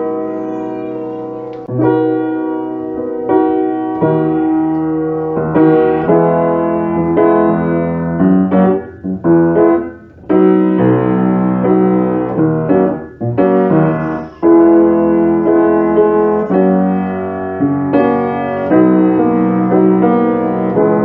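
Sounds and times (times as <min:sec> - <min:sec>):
slow piano music: 0:00.0 - 0:21.0.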